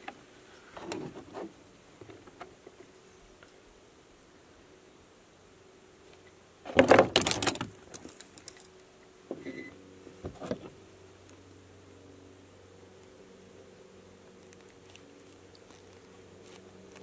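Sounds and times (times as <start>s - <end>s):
scraping rustle of wires: 14.3s - 17.0s.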